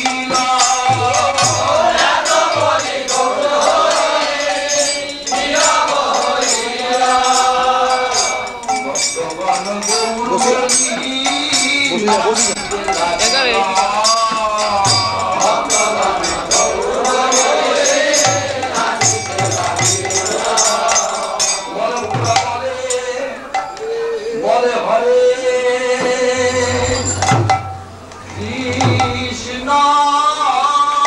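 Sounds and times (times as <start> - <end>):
small hand cymbals clinking: 0.0 - 24.4
metallic jingling percussion: 0.0 - 31.0
voices chanting devotional song: 0.0 - 31.0
held sung note: 12.8 - 30.4
hand drum strokes: 25.8 - 30.0.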